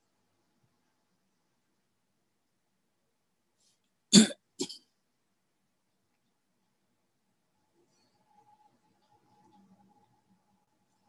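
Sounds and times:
person coughing: 0:04.1 - 0:04.8.

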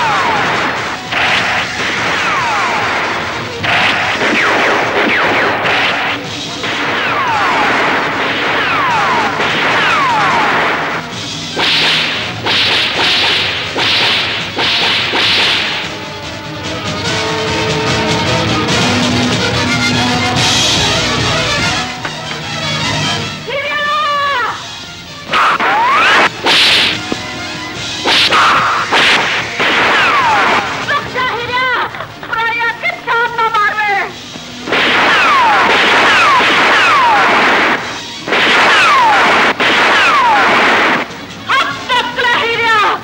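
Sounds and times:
punch cracks and whooshes: 0:00.0 - 0:15.9, 0:25.3 - 0:27.2, 0:28.0 - 0:30.7, 0:34.7 - 0:41.2
sharp rifle shots: 0:00.0 - 0:15.9, 0:25.3 - 0:27.2, 0:28.0 - 0:30.9, 0:34.6 - 0:41.3
ricochet whine: 0:00.0 - 0:16.2, 0:25.2 - 0:27.4, 0:28.0 - 0:30.9, 0:34.6 - 0:41.2.

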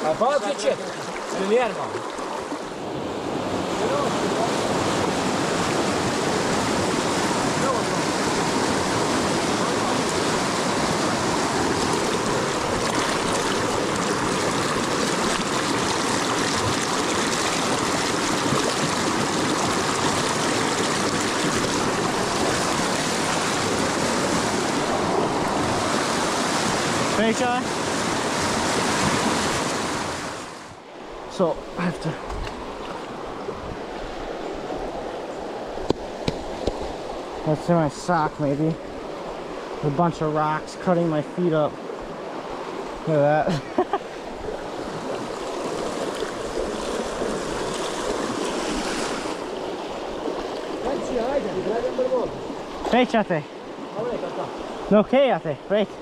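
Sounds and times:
stream water rushing: 0:00.0 - 0:56.0.

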